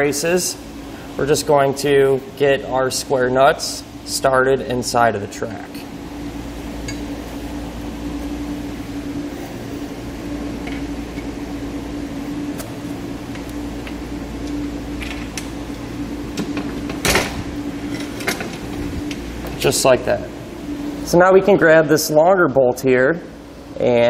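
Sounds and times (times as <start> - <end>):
mechanical hum: 0.0 - 24.0.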